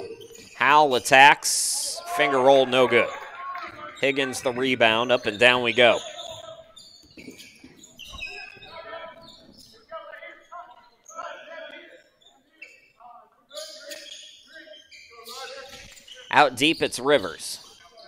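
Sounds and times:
players calling out: 0.0s - 6.8s, 7.5s - 12.8s.

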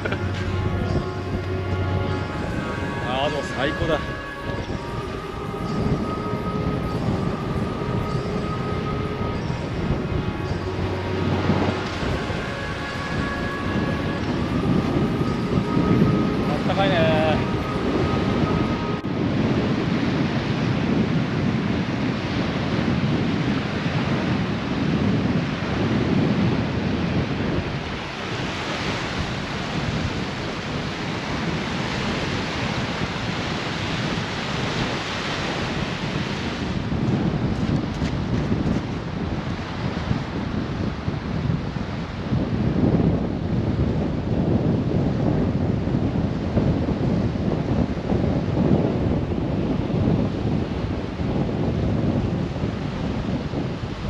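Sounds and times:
small waves on sandy shore: 0.0s - 54.0s
wind buffeting microphone: 0.0s - 54.0s.

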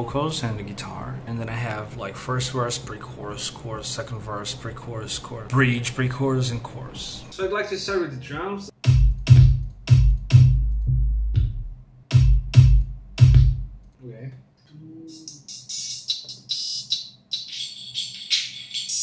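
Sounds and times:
electronic bass kick drum: 8.8s - 13.8s
sharp percussive hits: 8.8s - 13.8s.

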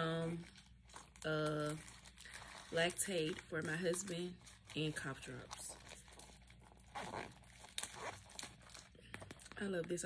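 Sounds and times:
candy wrappers crinkling: 0.0s - 10.0s.

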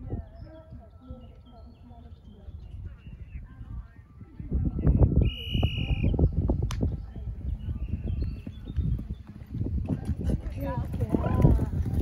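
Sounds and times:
wind on microphone: 0.0s - 12.0s
horse hooves thudding on turf: 8.2s - 12.0s.

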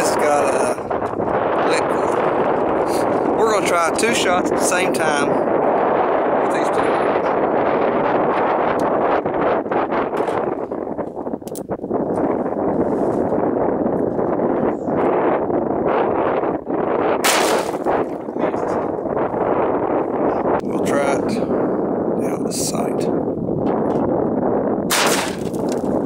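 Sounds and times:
wind noise on microphone: 0.0s - 26.0s
pistol shots: 17.2s - 17.8s, 24.9s - 25.4s.

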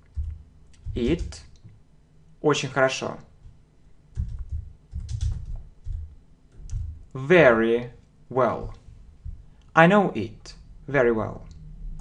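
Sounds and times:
typing on computer keyboard: 0.0s - 1.5s, 3.4s - 7.0s.

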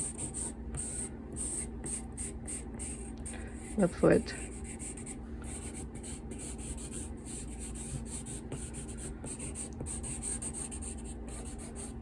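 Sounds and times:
pencil scratching on paper: 0.0s - 12.0s.

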